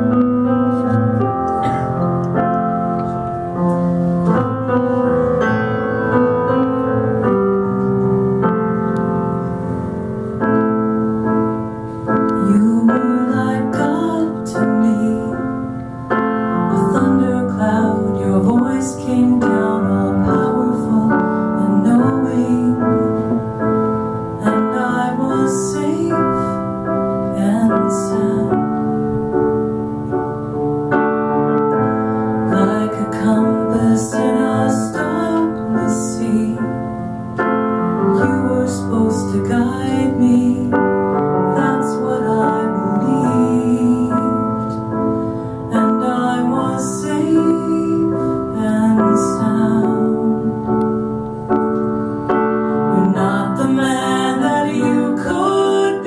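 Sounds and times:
slow piano chords: 0.0 - 56.0
woman singing: 12.2 - 15.7, 16.5 - 23.4, 24.4 - 29.0, 32.4 - 37.0, 38.0 - 44.8, 45.7 - 51.0, 52.9 - 56.0.

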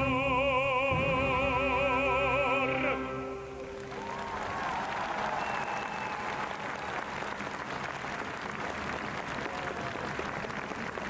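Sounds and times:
audience applauding: 3.7 - 11.0.

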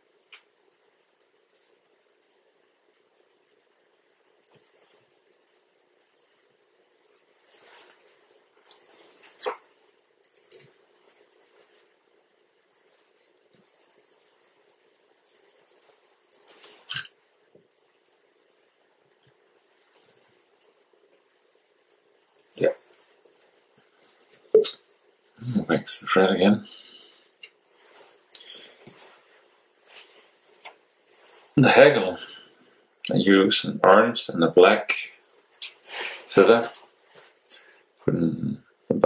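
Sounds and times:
faint steady hiss: 0.0 - 39.0
soft clicks and rustles: 12.7 - 18.2.

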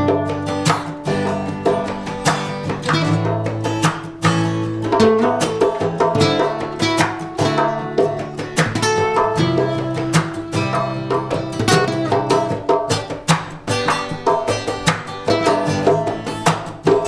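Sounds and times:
acoustic guitar strumming reggae rhythm: 0.0 - 17.0.

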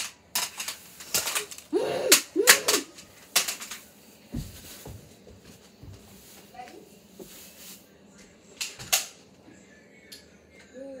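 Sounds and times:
toy dart blasters snapping: 1.1 - 3.6.

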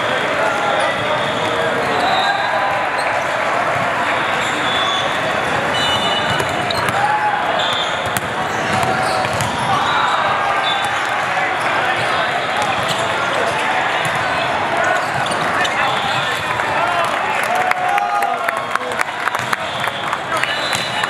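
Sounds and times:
many voices echoing: 0.0 - 21.0
volleyballs being struck: 7.7 - 9.7.

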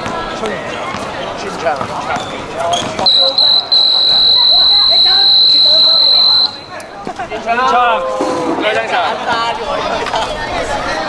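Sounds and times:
faint voices: 0.0 - 11.0
referee's whistle blast: 3.0 - 6.8.

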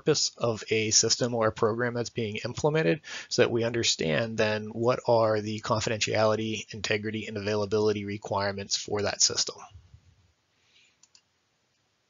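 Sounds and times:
faint short clicks: 11.0 - 11.3.

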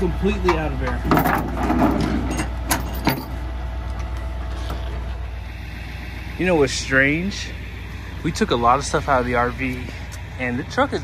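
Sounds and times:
diesel pickup idling: 0.0 - 11.0.

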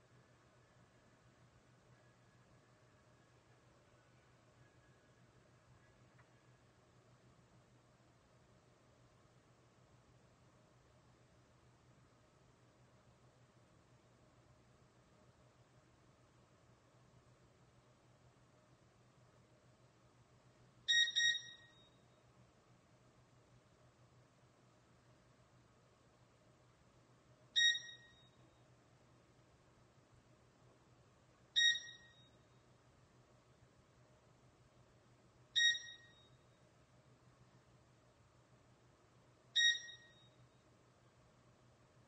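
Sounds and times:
faint room hum: 0.0 - 42.0
quick electronic beeps: 20.9 - 21.8, 27.6 - 28.2, 31.6 - 32.3, 35.6 - 36.3, 39.6 - 40.2.

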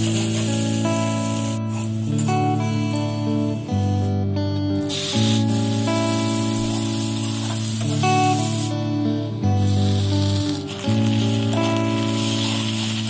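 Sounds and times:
onions sizzling in hot oil: 0.0 - 2.6, 4.8 - 8.8, 9.6 - 13.0.

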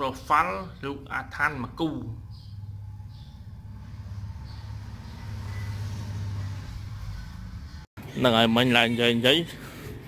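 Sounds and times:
low engine hum: 2.3 - 7.9.

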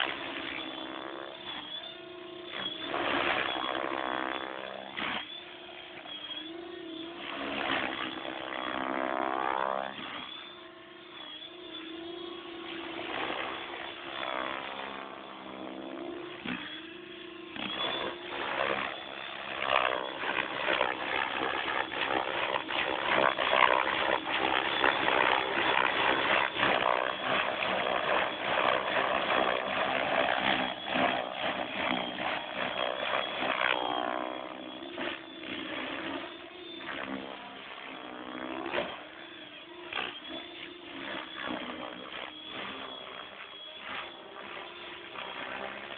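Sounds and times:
rc helicopter rotor whine: 0.0 - 45.9.

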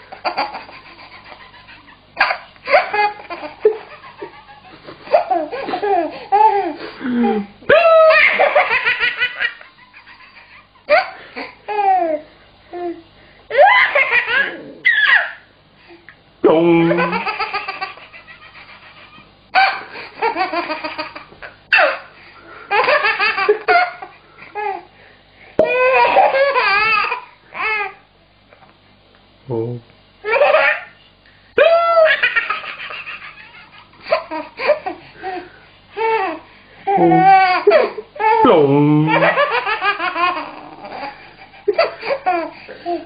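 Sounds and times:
man laughing hard: 2.7 - 11.5, 16.8 - 19.2, 39.0 - 43.0.

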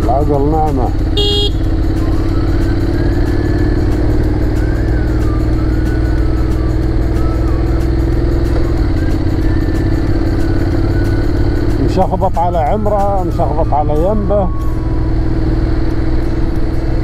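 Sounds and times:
motorcycle engine running: 0.0 - 17.0.

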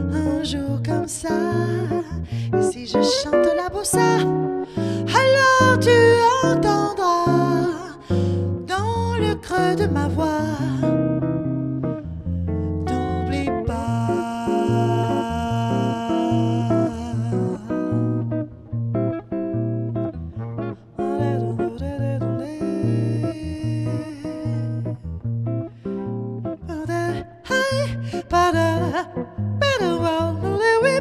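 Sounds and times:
electric jazz guitar playing: 0.0 - 31.0.

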